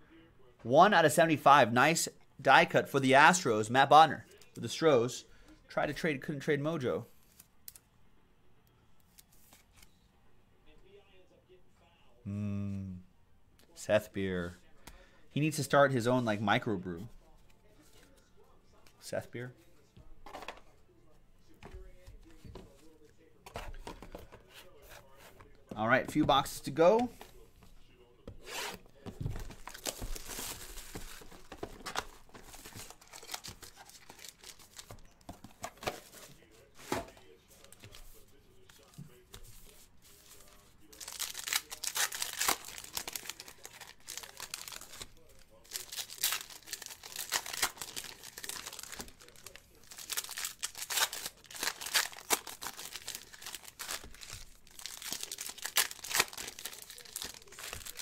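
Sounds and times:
wrappers crinkling: 40.8 - 58.0
foil packs being torn open: 41.0 - 58.0.

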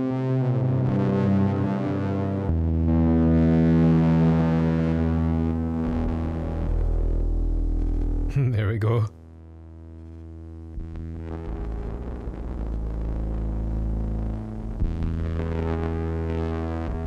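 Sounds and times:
electric guitar with octave effect: 0.0 - 8.3.

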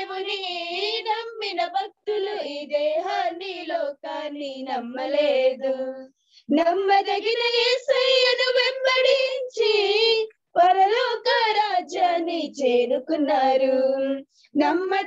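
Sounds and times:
girl singing unaccompanied: 0.0 - 15.0.

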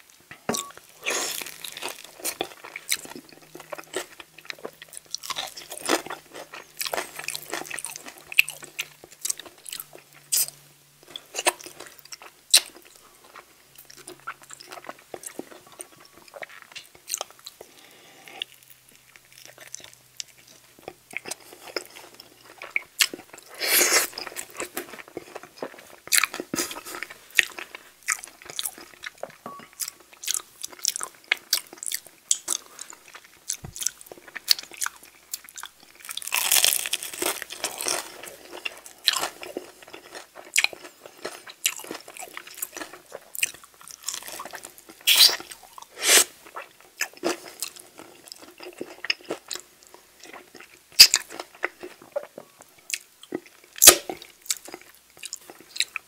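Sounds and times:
crunching fried chicken: 1.0 - 17.7, 29.9 - 56.0.

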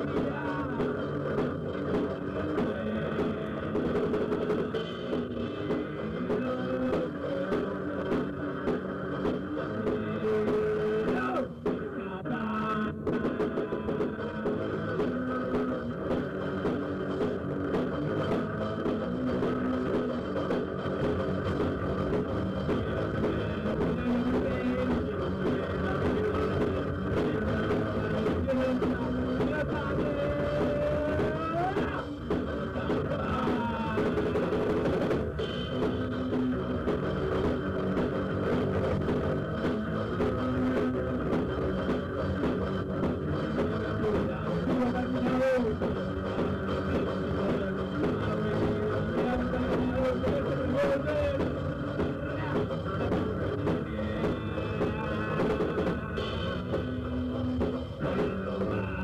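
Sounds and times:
bass guitar: 0.0 - 59.0
drum kit: 0.0 - 59.0
electric guitar: 0.0 - 59.0.

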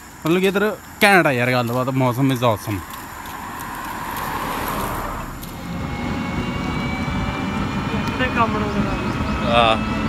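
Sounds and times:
faint high whine: 0.0 - 10.0
rickshaw engine rumble: 0.0 - 10.0
man speaking: 0.2 - 2.9.

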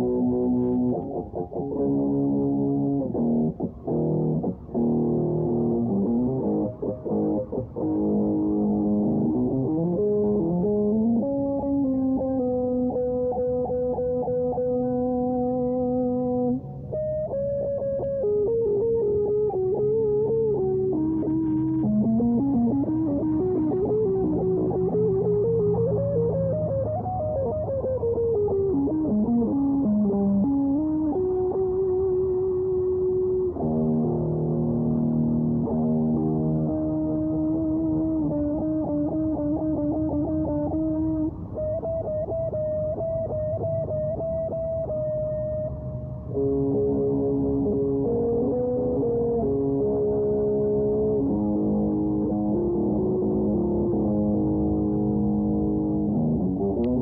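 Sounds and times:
electric guitar playing: 0.0 - 57.0.

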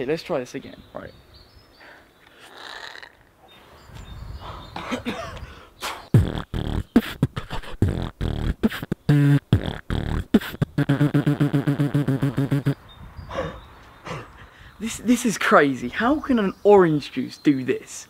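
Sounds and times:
beatboxing kick and snare sounds: 5.8 - 12.8
pulsing beatboxed bass buzz: 5.8 - 12.8.

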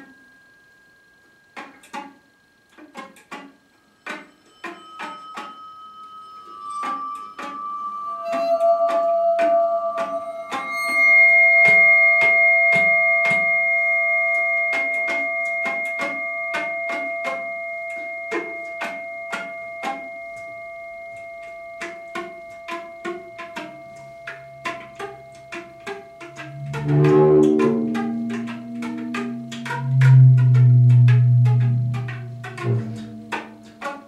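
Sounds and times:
long steady tones: 4.0 - 34.0.

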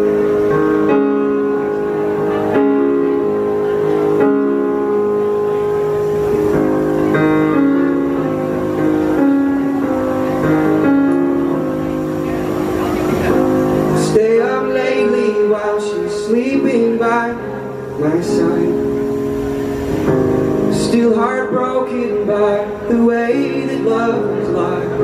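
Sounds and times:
solo piano chords: 0.0 - 25.0
man singing: 14.0 - 19.0, 20.7 - 25.0.

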